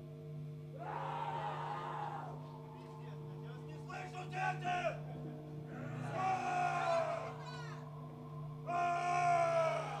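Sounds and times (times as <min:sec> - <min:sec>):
low electrical hum: 0:00.0 - 0:10.0
long vocal shouts: 0:00.8 - 0:02.4, 0:05.9 - 0:07.9, 0:08.6 - 0:10.0.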